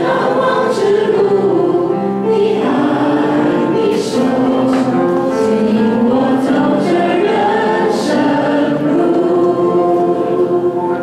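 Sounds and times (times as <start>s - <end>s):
group singing praise song: 0.0s - 11.0s.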